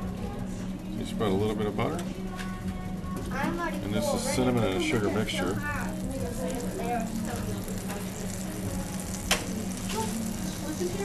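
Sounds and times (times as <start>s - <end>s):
faint griddle sizzling: 2.2s - 11.0s.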